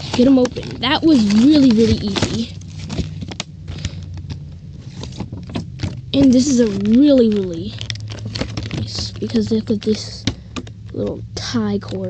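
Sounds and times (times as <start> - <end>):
plastic packaging clicks and crinkles: 0.0 - 11.1
faint low hum: 0.0 - 12.0.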